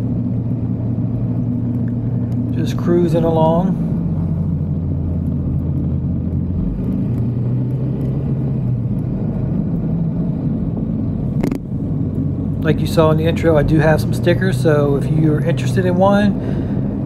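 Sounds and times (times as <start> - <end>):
road and wind noise: 0.0 - 17.0.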